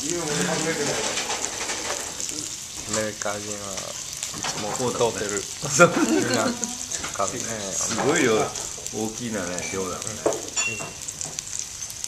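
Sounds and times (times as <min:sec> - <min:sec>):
meat and vegetables sizzling: 0:00.0 - 0:12.0.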